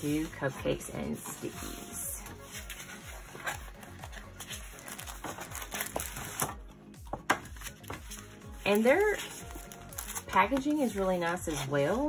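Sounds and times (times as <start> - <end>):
paper rustling: 0.0 - 6.5, 7.4 - 12.0
background music: 0.0 - 12.0.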